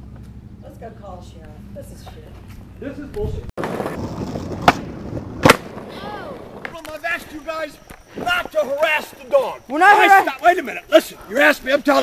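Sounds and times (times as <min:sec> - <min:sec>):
skateboard wheels rolling on pavement: 0:00.0 - 0:12.0.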